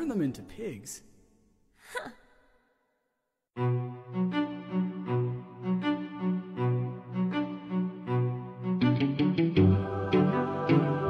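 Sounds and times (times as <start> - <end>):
music and singing reverb: 9.4 - 11.0.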